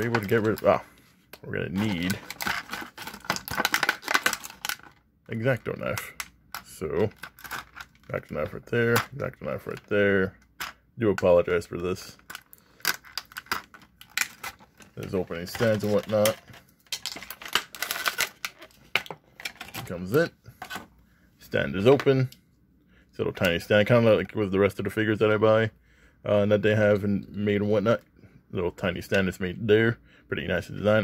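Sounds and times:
plastic packaging crackling: 1.6 - 6.2, 6.8 - 8.3, 12.0 - 19.9.

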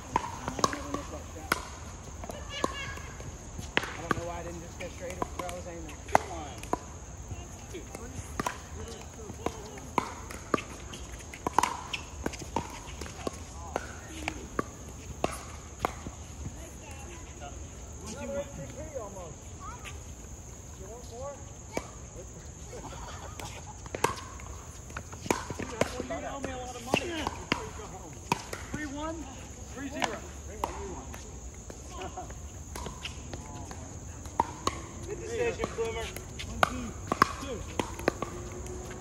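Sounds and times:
ball bouncing on hard court: 0.0 - 17.1, 23.4 - 29.2, 29.8 - 32.0, 32.6 - 39.0.

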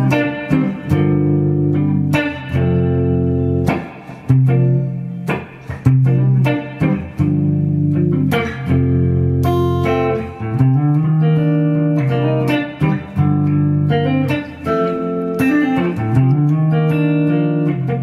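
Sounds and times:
electric guitar chords ringing: 0.0 - 18.0.

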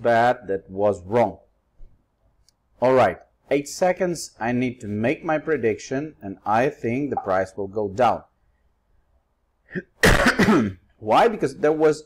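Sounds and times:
man coughing: 9.7 - 10.8.

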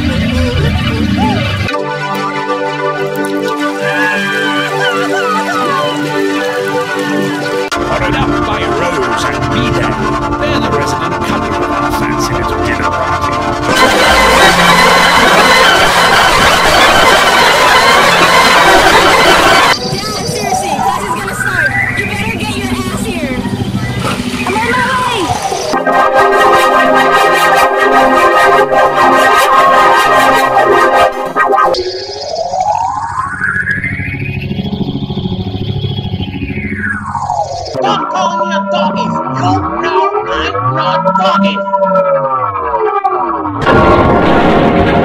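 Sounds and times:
distorted layered music: 0.0 - 45.0
tone sweeping up and down: 3.2 - 45.0
low pulsing buzz: 6.1 - 42.6, 43.6 - 45.0.

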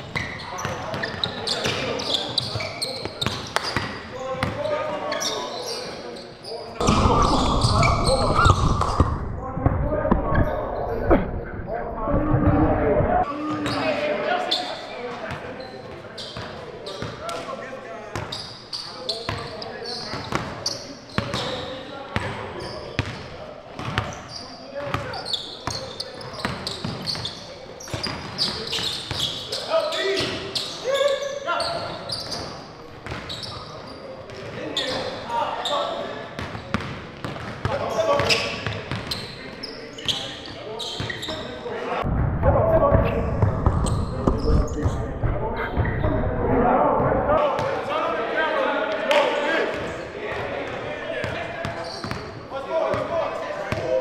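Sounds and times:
voices echoing in a hall: 0.0 - 54.0.

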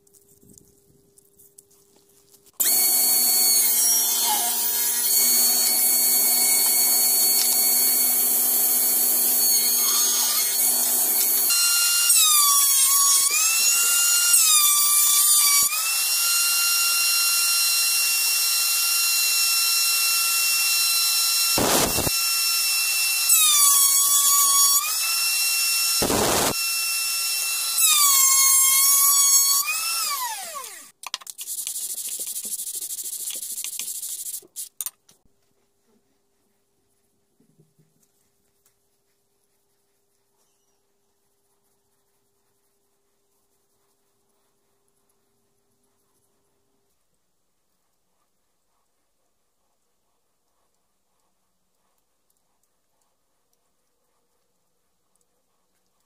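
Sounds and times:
router whining: 2.6 - 31.0.

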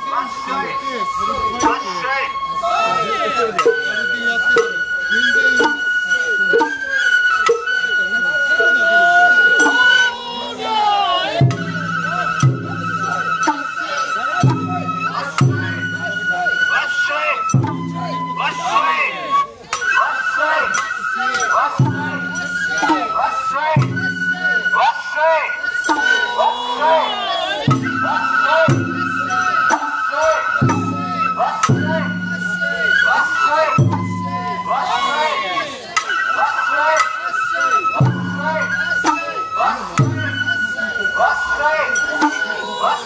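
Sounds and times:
bamboo flutes high notes: 0.0 - 43.0
voices: 0.0 - 43.0
drum strikes: 3.6 - 3.8, 4.5 - 4.9, 6.5 - 6.8, 9.6 - 13.7, 14.4 - 15.9, 23.7 - 24.8, 27.6 - 30.0, 30.6 - 33.0
overlapping voices: 8.6 - 13.7, 24.5 - 30.5, 33.1 - 40.0, 40.8 - 43.0.

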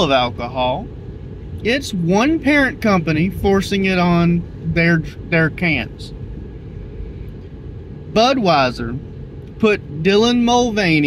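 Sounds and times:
car cabin low rumble: 0.0 - 11.0.

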